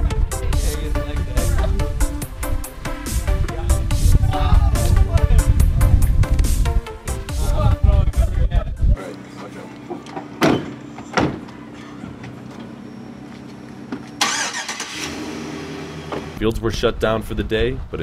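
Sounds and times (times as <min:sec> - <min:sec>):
van engine idling: 0:09.0 - 0:16.4
sharp knocks: 0:10.1 - 0:11.5.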